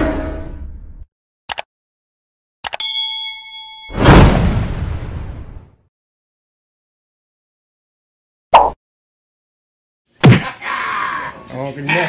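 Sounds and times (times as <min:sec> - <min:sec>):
quick clicks: 0:01.5 - 0:01.7, 0:02.6 - 0:02.8
notification bell ding: 0:02.8 - 0:04.0.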